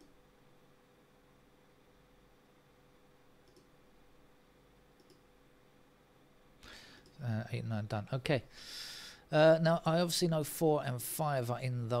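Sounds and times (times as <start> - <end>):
faint computer mouse clicks: 3.4 - 3.7, 5.0 - 5.2.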